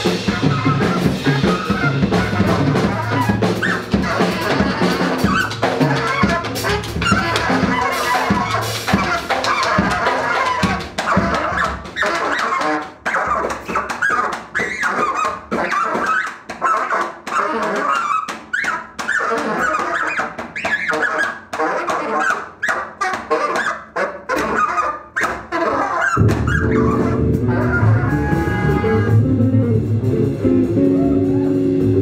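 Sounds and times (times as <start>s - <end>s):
band with bass and electric guitar: 0.0s - 13.0s, 26.2s - 32.0s
saxophone squealing and honking: 0.0s - 29.5s
sharp drum hits: 26.2s - 32.0s.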